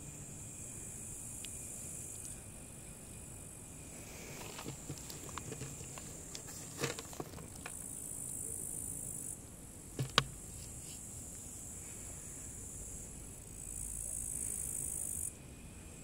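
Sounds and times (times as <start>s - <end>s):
insects buzzing: 0.0s - 16.0s
sharp knocks: 10.0s - 10.4s.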